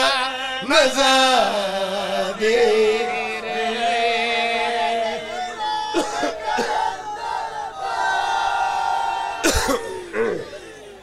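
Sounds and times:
loud cough: 5.9s - 6.9s, 9.4s - 10.5s.

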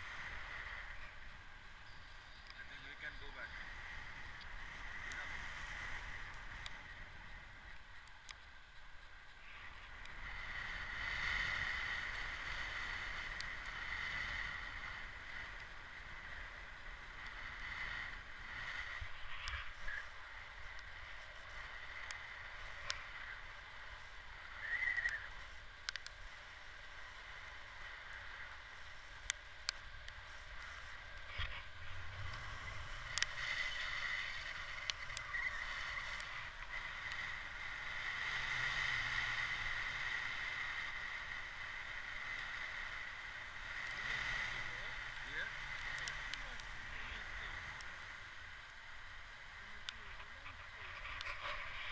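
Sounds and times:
high-pitched whistle: 24.6s - 25.3s
sharp clicks: 24.6s - 26.2s, 45.0s - 46.9s.

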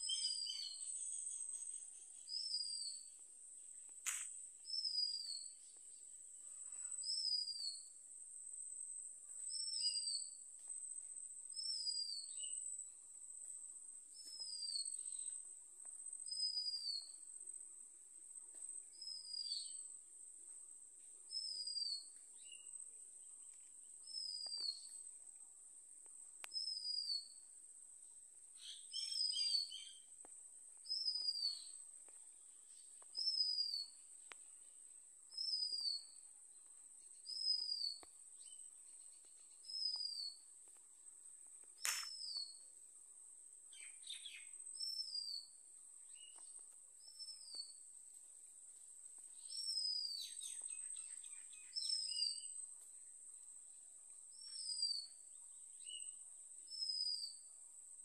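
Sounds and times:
sharp click: 4.0s - 4.3s, 41.8s - 42.3s.

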